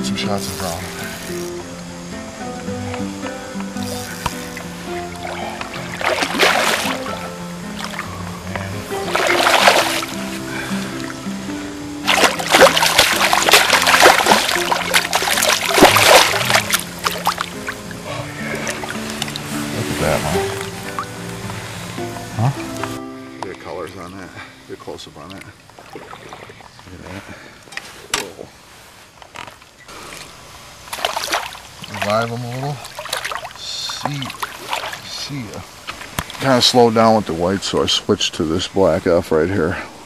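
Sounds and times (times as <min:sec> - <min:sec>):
background music: 0:00.0 - 0:25.1
fish splashing in water: 0:03.9 - 0:08.2, 0:08.9 - 0:11.2, 0:12.0 - 0:21.2, 0:25.6 - 0:26.8, 0:29.9 - 0:36.6.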